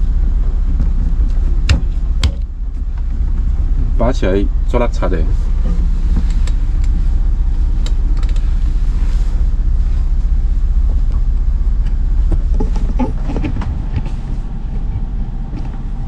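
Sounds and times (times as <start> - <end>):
machinery rumbling: 0.0 - 16.0
steering wheel clicks and knocks: 0.7 - 3.5.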